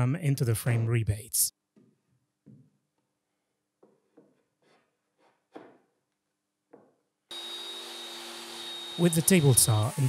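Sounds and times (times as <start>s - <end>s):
wood knocking and scraping on wood: 1.8s - 2.8s, 3.8s - 6.0s, 6.7s - 7.0s
table saw running with high whine: 7.3s - 10.0s.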